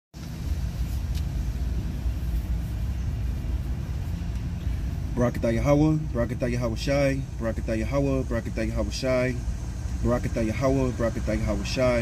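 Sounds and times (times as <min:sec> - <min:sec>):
car engine idling: 0:00.2 - 0:12.0.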